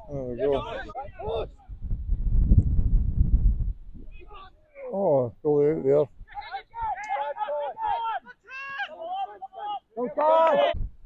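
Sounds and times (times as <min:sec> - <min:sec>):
wind buffeting microphone: 0:00.0 - 0:04.6.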